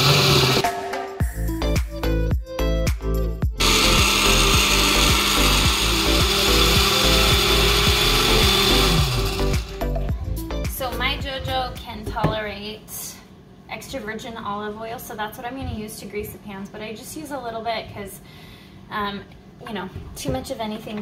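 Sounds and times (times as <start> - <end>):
blender grinding: 0.0 - 0.6, 3.6 - 10.1
blender motor winding down: 0.0 - 0.6, 3.6 - 10.1.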